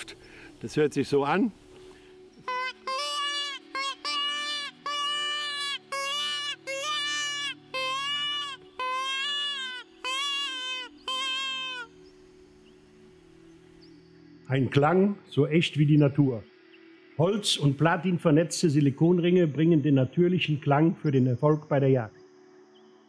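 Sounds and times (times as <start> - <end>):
hare call wailing cries: 2.4 - 12.0.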